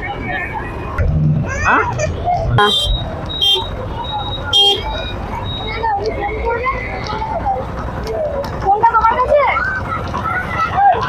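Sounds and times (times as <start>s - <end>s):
passing motorbikes and rickshaws: 0.0s - 11.0s
voices chatting: 0.0s - 11.0s.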